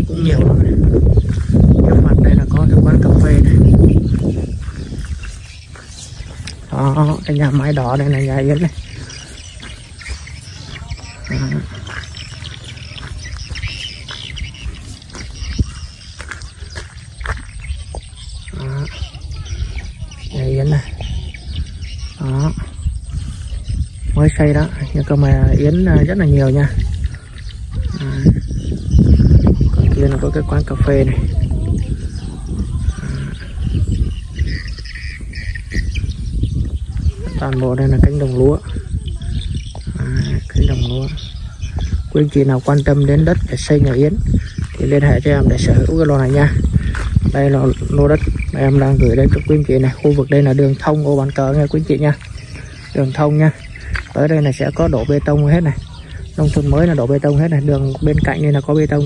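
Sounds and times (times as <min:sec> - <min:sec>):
faint bird chirps: 0:00.0 - 0:59.0
steady low rumble: 0:00.0 - 0:59.0
wind buffeting microphone: 0:00.0 - 0:59.0.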